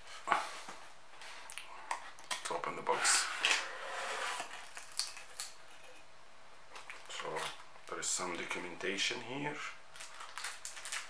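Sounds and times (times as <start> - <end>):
cardboard scraping on cardboard: 2.8 - 4.7
light clicks and taps of packaging: 10.0 - 11.0.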